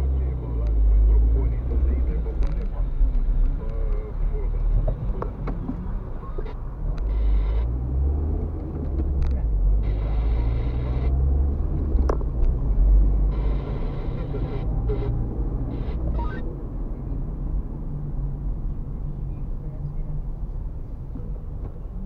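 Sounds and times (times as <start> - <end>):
car engine and tyres rumbling: 0.0 - 22.0.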